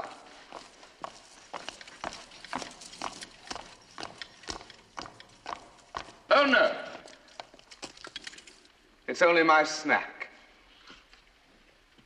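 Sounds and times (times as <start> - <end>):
footsteps knocking: 0.5 - 6.3.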